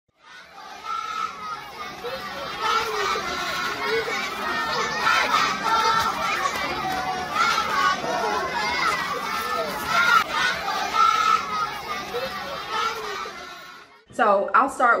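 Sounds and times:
children chattering and calling out: 0.2s - 14.0s.

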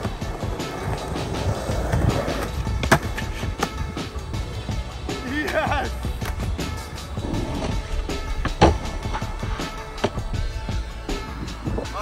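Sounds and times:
skateboard clack: 0.0s - 4.2s, 5.4s - 10.3s
skateboard wheels rolling on concrete: 0.0s - 12.0s.

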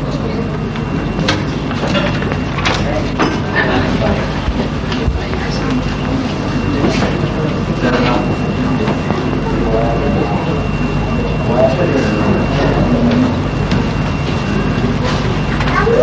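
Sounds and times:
high-pitched whine: 0.0s - 16.0s
indistinct voices: 0.0s - 16.0s.

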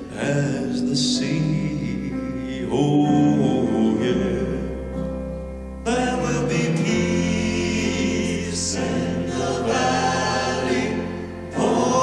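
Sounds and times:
male voices singing gospel harmony: 5.9s - 12.0s.

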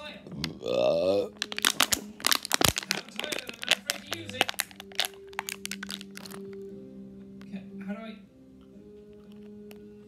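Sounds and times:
plastic bottle crinkling: 0.3s - 6.7s.

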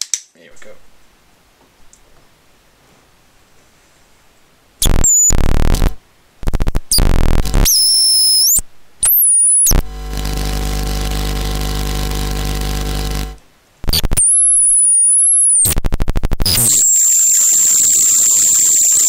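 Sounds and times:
high squealing whistles: 4.8s - 5.4s, 7.6s - 9.7s, 14.2s - 15.7s, 16.5s - 19.0s
buzzing electronic drone: 4.8s - 19.0s
harsh electronic noise bursts: 4.8s - 19.0s.

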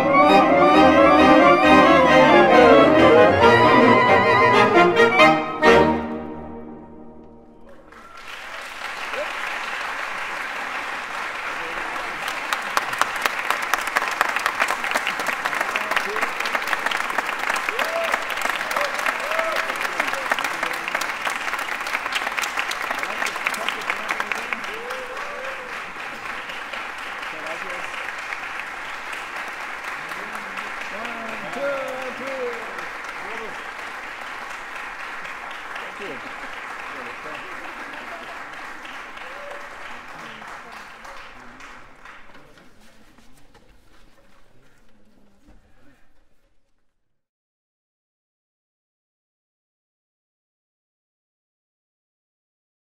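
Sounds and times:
audience applauding: 0.0s - 6.2s, 7.5s - 43.0s.

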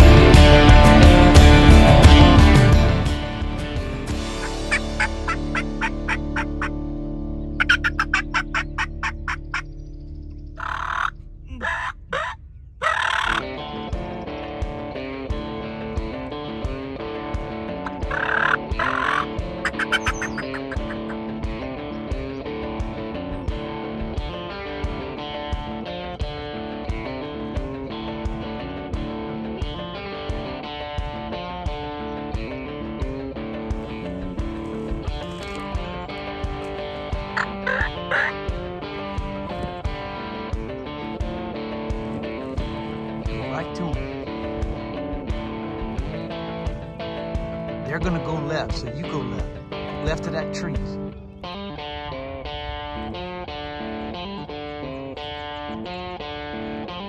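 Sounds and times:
guitar music with steady beat: 0.0s - 9.7s, 13.4s - 57.0s
turkey gobbling: 4.4s - 6.8s, 7.6s - 9.7s, 10.6s - 13.5s, 17.8s - 21.5s, 33.9s - 38.5s.

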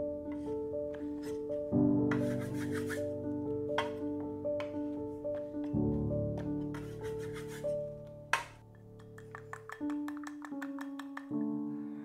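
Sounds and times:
background music: 0.0s - 12.0s
cleaver scraping wooden board: 2.1s - 3.1s, 6.6s - 7.8s.

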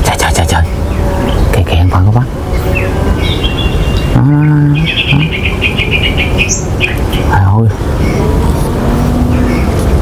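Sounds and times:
bird trilling: 0.6s - 7.4s.

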